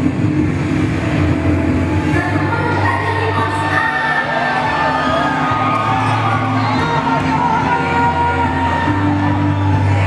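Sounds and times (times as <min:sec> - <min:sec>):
rumbling soundtrack over speakers: 0:00.0 - 0:10.0.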